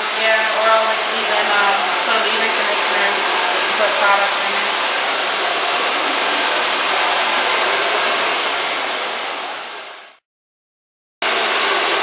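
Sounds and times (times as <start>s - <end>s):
hair dryer blowing: 0.0s - 10.2s, 11.2s - 12.0s.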